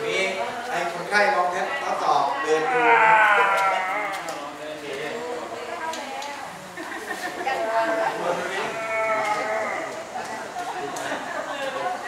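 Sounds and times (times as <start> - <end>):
people's voices: 0.0 - 12.0.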